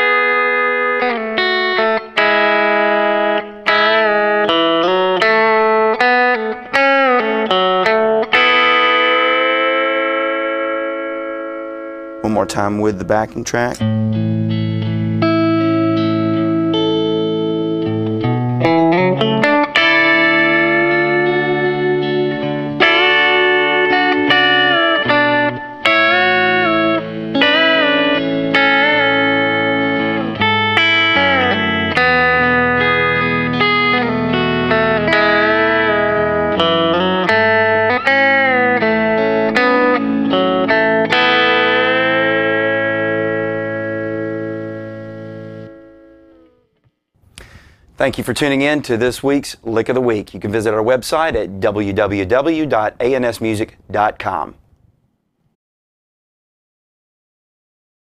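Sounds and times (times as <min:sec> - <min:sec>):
electric guitar country ballad lick: 0:00.0 - 0:47.8
backing track of sustained chords: 0:08.5 - 0:46.8.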